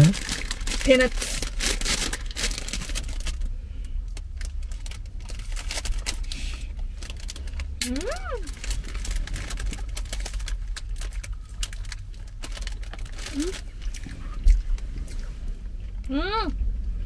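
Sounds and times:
plastic bag crinkling: 0:00.0 - 0:03.5, 0:04.1 - 0:14.9
low rumble: 0:00.0 - 0:17.0
eating sounds: 0:07.8 - 0:15.4
person humming: 0:16.1 - 0:16.6.

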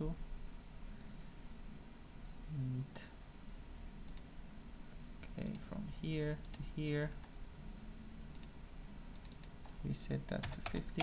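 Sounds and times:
low steady hum: 0:00.0 - 0:11.0
mouse and keyboard clicks: 0:08.3 - 0:09.8.

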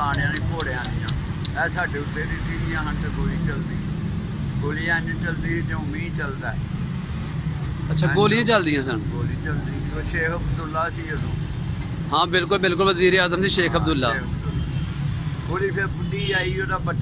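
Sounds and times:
man speaking: 0:00.0 - 0:03.9, 0:04.6 - 0:06.6, 0:07.9 - 0:11.3, 0:12.1 - 0:14.6, 0:15.5 - 0:17.0.

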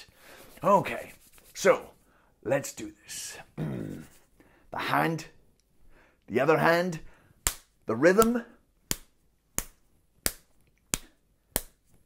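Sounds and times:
fist slapping open palm: 0:07.4 - 0:12.0.

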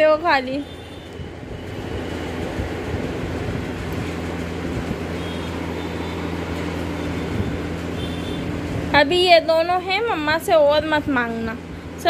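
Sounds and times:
steady mechanical hum: 0:00.0 - 0:12.0.

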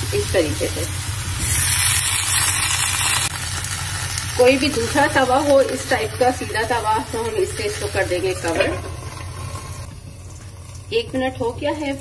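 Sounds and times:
low steady hum: 0:00.0 - 0:12.0
water sizzling on hot iron pan: 0:00.0 - 0:12.0.

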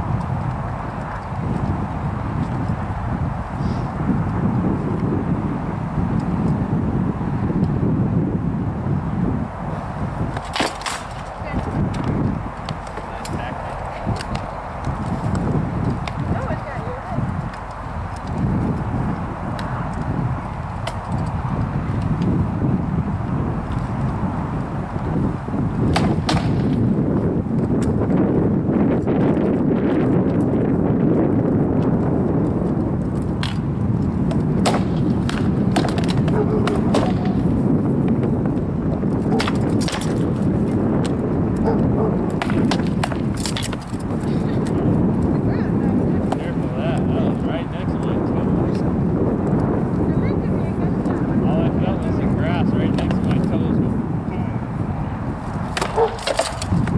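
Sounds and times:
wind buffeting microphone: 0:00.0 - 0:56.9
rattan swords striking shields: 0:10.3 - 0:11.3, 0:34.6 - 0:37.4, 0:55.7 - 0:56.7.

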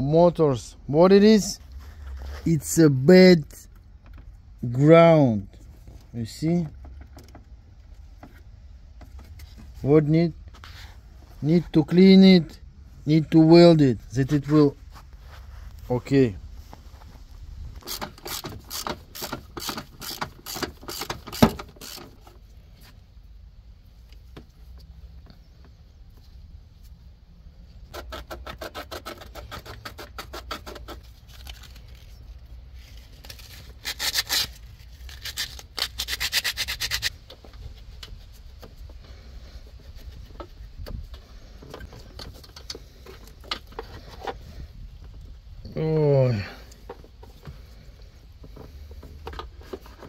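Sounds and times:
hand sanding and scraping metal: 0:27.9 - 0:32.1, 0:32.8 - 0:40.7.

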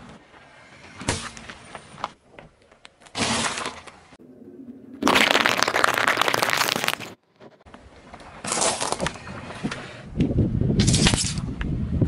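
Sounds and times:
tyre bursting tomatoes: 0:05.0 - 0:07.2.

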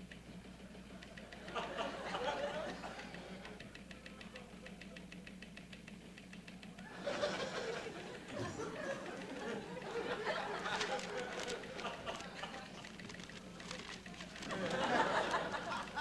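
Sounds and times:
audience laughter: 0:01.3 - 0:03.6, 0:06.8 - 0:16.0.

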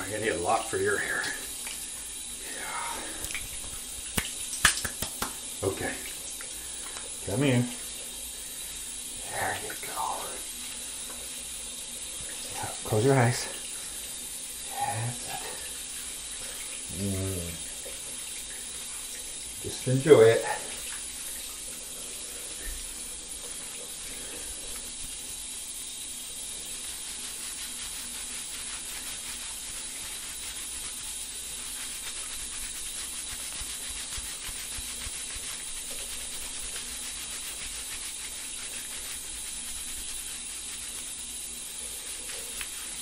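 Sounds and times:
shower water running: 0:00.0 - 0:43.0.

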